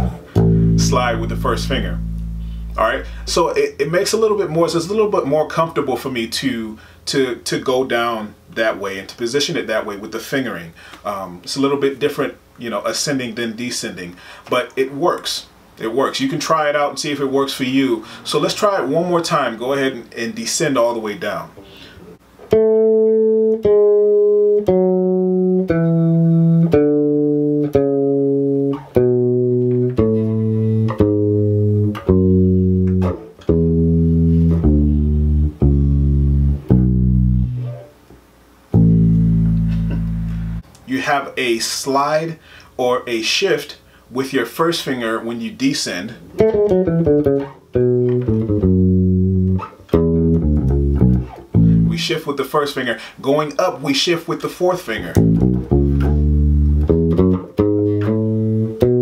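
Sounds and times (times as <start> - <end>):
electric bass guitar plucked notes: 0.0 - 4.0, 22.5 - 38.0, 38.7 - 40.6, 46.4 - 52.0, 55.1 - 59.0.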